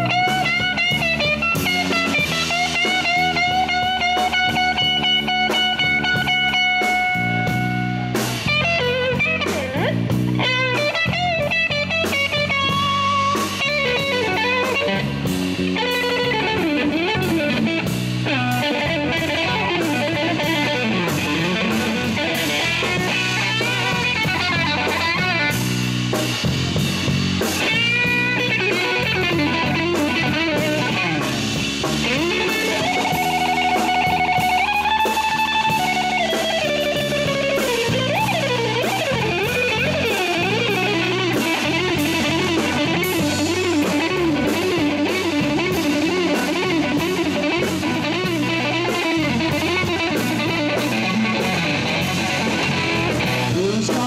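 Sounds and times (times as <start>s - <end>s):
bass guitar: 0.0s - 54.0s
drum kit: 0.0s - 54.0s
electric guitar lead with bends: 0.0s - 54.0s.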